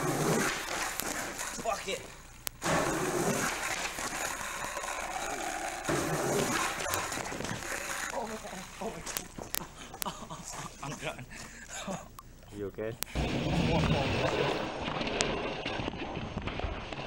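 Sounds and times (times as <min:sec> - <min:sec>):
camcorder noise: 0:00.0 - 0:10.6.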